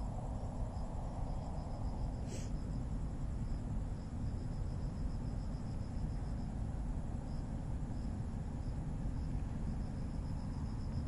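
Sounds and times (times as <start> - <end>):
crickets chirping: 0.0 - 11.0
steady low rumble: 0.0 - 11.0.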